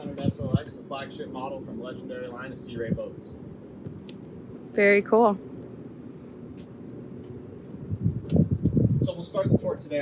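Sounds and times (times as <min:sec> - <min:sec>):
wind buffeting microphone: 0:00.0 - 0:04.5, 0:06.3 - 0:10.0
outdoor background noise: 0:00.0 - 0:10.0.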